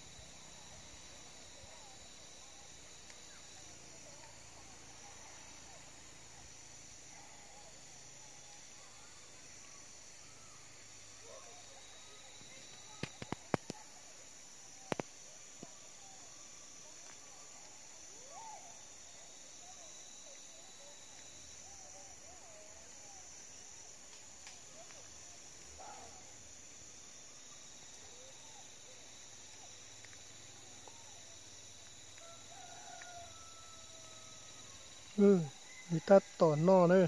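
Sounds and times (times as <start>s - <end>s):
insect chorus drone: 0.0s - 37.0s.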